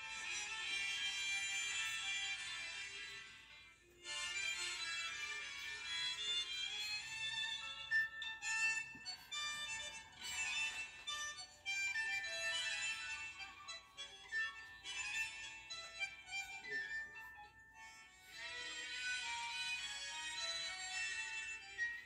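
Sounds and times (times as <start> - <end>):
tango music: 0.0 - 22.0
violin: 0.0 - 22.0.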